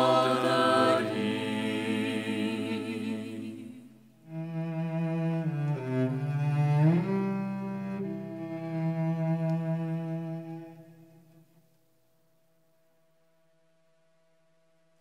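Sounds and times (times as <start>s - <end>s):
cello bowed notes: 4.3s - 11.4s.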